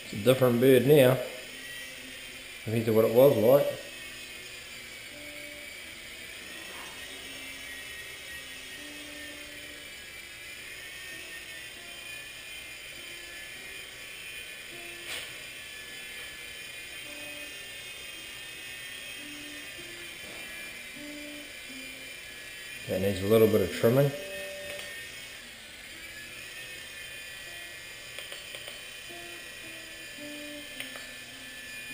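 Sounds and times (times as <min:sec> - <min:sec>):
toy helicopter rotor whine: 0:00.0 - 0:31.9
single click: 0:28.1 - 0:28.8, 0:30.8 - 0:31.1.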